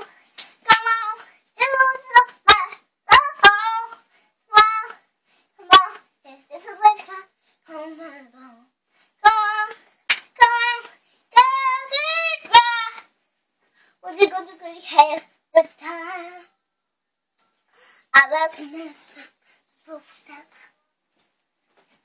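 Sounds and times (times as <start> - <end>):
girl singing unaccompanied: 0.0 - 13.2, 13.8 - 16.7, 17.7 - 21.0.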